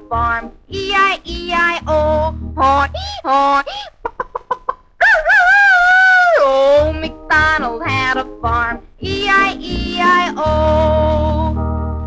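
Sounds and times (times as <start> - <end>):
chicken clucking: 3.0 - 5.4.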